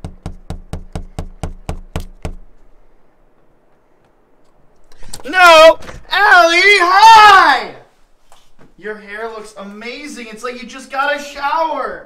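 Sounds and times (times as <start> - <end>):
rapid knocking on window pane: 0.0 - 2.4.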